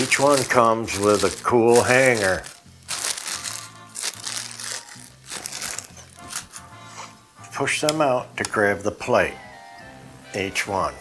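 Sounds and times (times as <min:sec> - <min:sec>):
plastic bag crinkling: 0:00.0 - 0:06.7
background music: 0:00.0 - 0:11.0.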